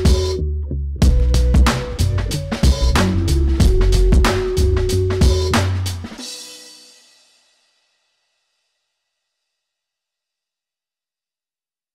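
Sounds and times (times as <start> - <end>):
hip-hop beat final hit: 1.0 - 7.2
cymbal ringing: 6.2 - 7.7.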